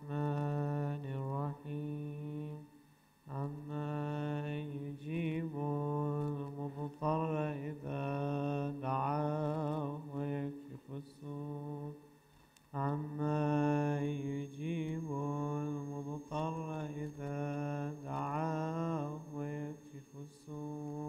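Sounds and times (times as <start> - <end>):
man chanting recitation: 0.0 - 2.7, 3.3 - 12.1, 12.7 - 21.0.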